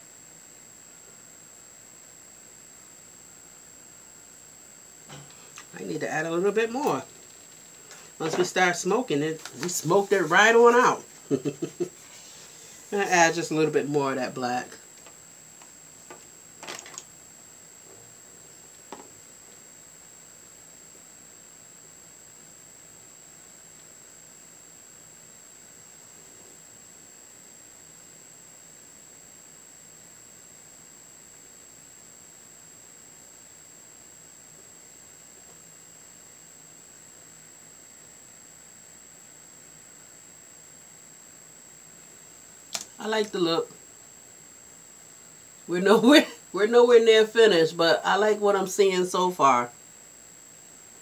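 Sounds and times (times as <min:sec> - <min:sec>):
steady hiss: 0:00.0 - 0:27.8, 0:33.4 - 0:51.0
high constant whine: 0:00.0 - 0:51.0.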